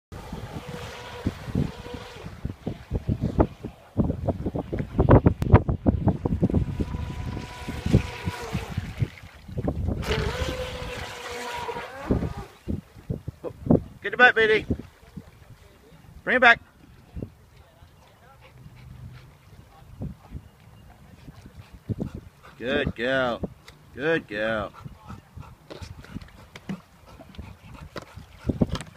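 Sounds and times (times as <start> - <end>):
wind buffeting microphone: 0.1 - 28.9
model boat motor whining: 0.2 - 2.6, 6.4 - 9.0, 10.0 - 12.7.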